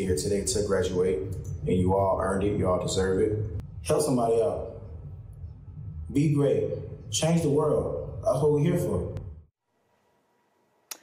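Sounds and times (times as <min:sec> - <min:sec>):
man's voice: 0:00.0 - 0:04.8, 0:06.1 - 0:09.2.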